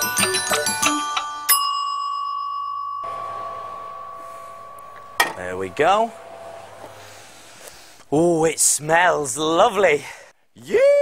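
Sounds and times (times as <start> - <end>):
mallet percussion music: 0.0 - 5.4
timer bell ding: 0.0 - 6.2.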